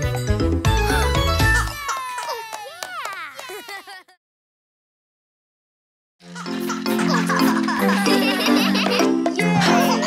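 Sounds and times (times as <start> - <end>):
cartoon voices squealing and cheering: 1.6 - 4.0.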